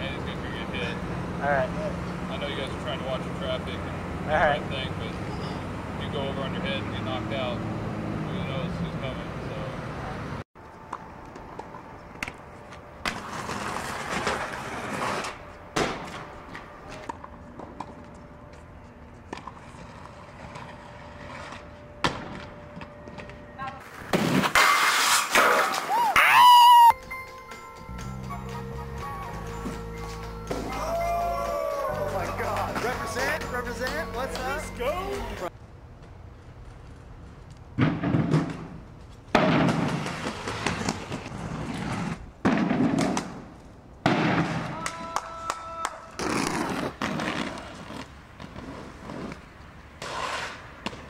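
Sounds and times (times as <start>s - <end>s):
skate wheels rolling on concrete: 10.6s - 28.2s, 28.9s - 51.0s
sharp clacks of skate grinds: 10.9s - 26.0s, 36.7s - 43.8s, 44.4s - 51.0s
steady low tones: 27.0s - 35.5s
voices yelling: 30.6s - 35.5s
man speaking: 32.0s - 35.5s.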